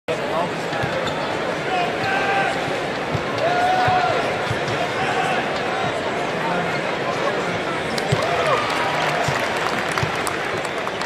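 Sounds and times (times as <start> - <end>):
arena crowd hubbub: 0.1 - 11.0.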